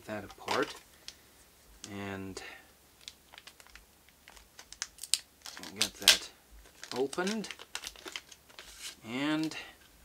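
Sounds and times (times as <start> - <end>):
plastic wrapping crackling: 3.0 - 9.6.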